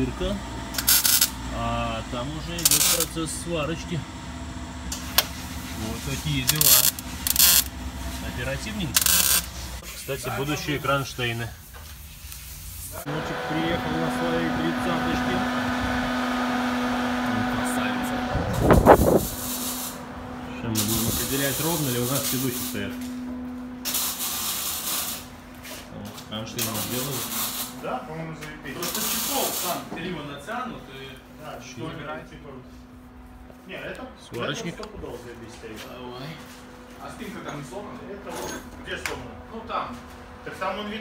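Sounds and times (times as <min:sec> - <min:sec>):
welder low hum: 0:00.0 - 0:11.2, 0:12.3 - 0:27.8
sharp welding crack: 0:00.8 - 0:01.4, 0:02.6 - 0:03.1, 0:06.4 - 0:07.7, 0:08.9 - 0:09.6, 0:23.8 - 0:25.3, 0:26.6 - 0:27.7
welding hiss and crackle: 0:00.8 - 0:01.4, 0:02.6 - 0:03.2, 0:05.0 - 0:07.8, 0:08.8 - 0:13.1, 0:19.2 - 0:20.0, 0:20.7 - 0:22.9, 0:23.8 - 0:25.8, 0:26.5 - 0:27.8, 0:28.8 - 0:29.8.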